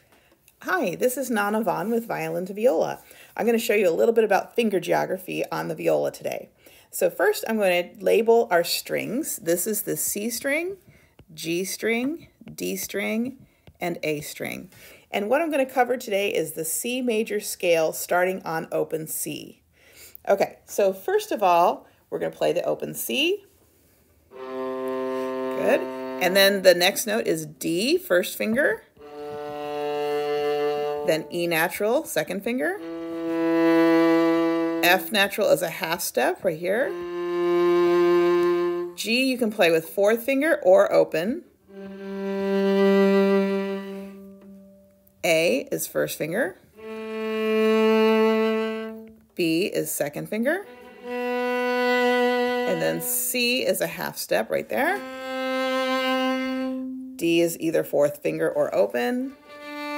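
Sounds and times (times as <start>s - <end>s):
viola bowed note: 24.3s - 26.7s, 29.0s - 32.0s, 32.7s - 35.5s, 36.8s - 39.1s, 41.7s - 45.2s, 46.8s - 49.3s, 50.6s - 53.6s, 54.9s - 57.6s, 59.2s - 59.9s.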